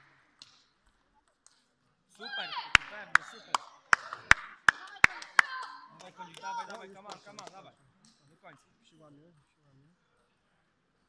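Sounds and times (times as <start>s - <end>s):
voices: 2.1s - 10.4s.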